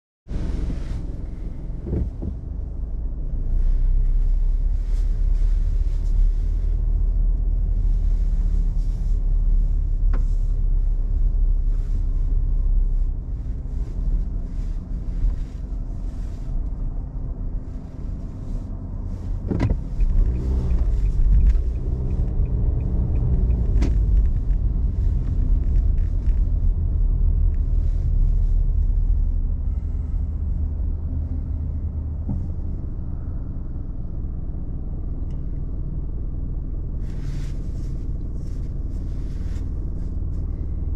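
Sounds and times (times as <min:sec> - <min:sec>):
car engine and road rumble: 0:00.2 - 0:40.9.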